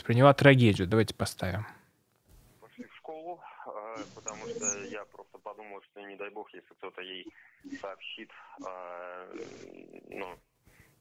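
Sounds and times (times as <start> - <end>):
faint recorded male speech: 2.6 - 10.5.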